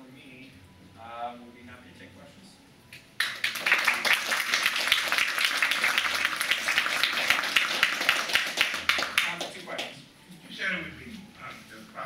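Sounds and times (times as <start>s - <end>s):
audience applauding: 3.2s - 9.9s.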